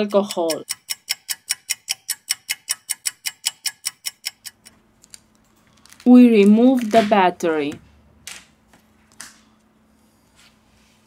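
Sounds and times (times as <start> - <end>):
stopwatch ticking: 0.0 - 4.8.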